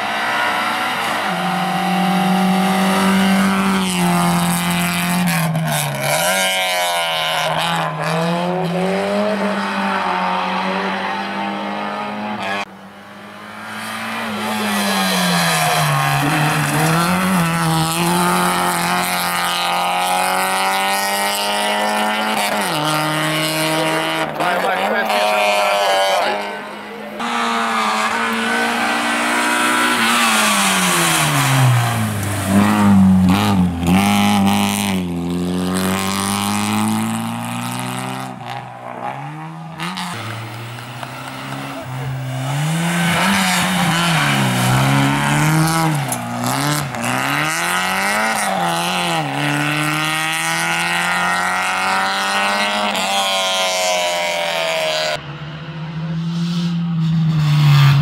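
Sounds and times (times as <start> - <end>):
car engine revving hard: 0.0 - 12.7, 13.5 - 55.2.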